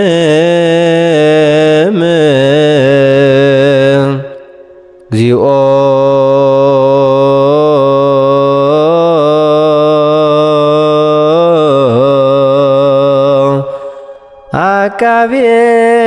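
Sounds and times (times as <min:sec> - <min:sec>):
man chanting liturgical chant: 0:00.0 - 0:04.5, 0:05.1 - 0:16.0
person breathing: 0:13.6 - 0:14.4.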